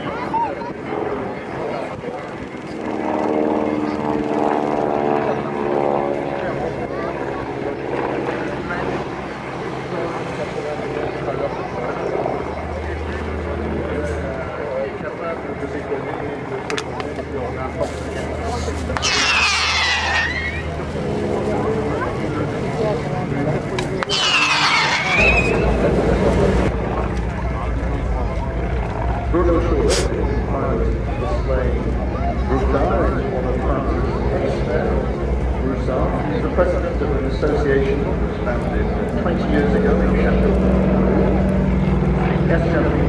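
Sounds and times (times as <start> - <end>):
light aircraft engine droning: 0.0 - 43.0
sharp burst of noise: 19.0 - 20.8, 24.1 - 26.7.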